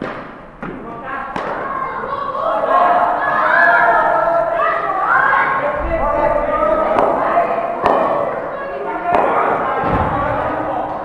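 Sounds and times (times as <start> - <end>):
echoing indistinct voices: 0.0 - 11.0.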